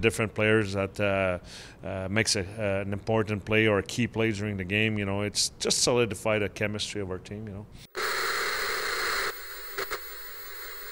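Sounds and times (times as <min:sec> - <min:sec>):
brief crackle: 0:07.9 - 0:10.9
television static hiss: 0:07.9 - 0:10.9.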